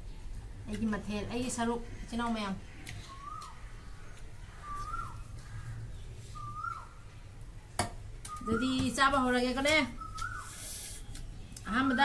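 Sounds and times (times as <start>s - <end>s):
bird whistled call: 3.0s - 3.6s, 4.6s - 5.3s, 6.3s - 7.0s, 8.3s - 8.9s, 9.9s - 11.0s.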